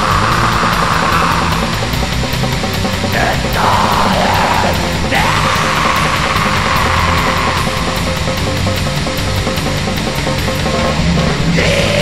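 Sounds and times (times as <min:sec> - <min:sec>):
black metal song: 0:00.0 - 0:12.0
long held scream: 0:03.6 - 0:07.9.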